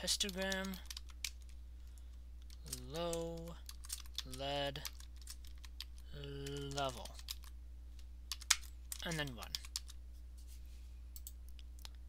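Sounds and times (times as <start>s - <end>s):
computer keyboard keystrokes: 0.2s - 1.5s, 2.4s - 7.5s, 8.3s - 10.0s.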